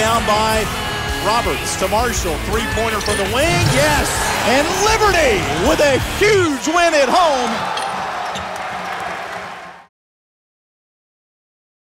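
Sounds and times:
crowd cheering: 0:03.4 - 0:09.9.

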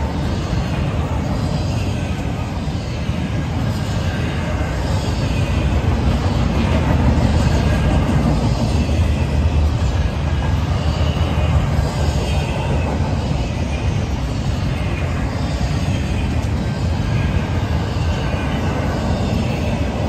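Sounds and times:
freight train rumbling past: 0:00.0 - 0:20.0.

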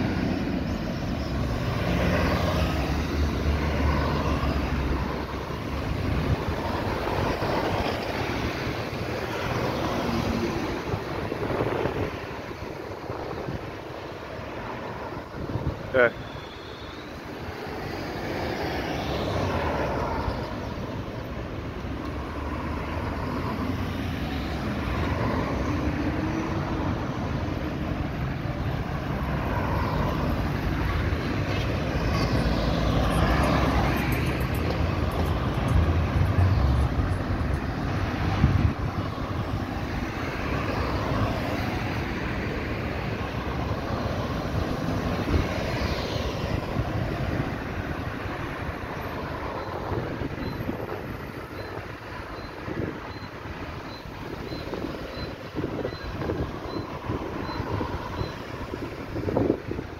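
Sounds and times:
cars passing: 0:00.0 - 0:59.9
traffic rumble: 0:00.0 - 0:59.9.

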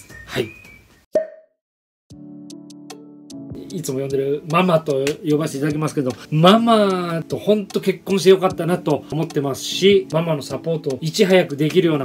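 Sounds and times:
pop with ringing tone: 0:01.1 - 0:01.6
soft background music: 0:02.1 - 0:12.0.

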